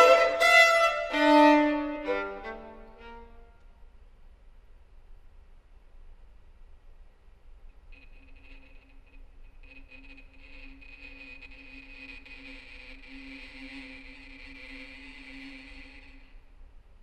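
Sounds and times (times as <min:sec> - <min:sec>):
breathy hissing bow sound: 0:00.0 - 0:03.4, 0:08.0 - 0:16.7.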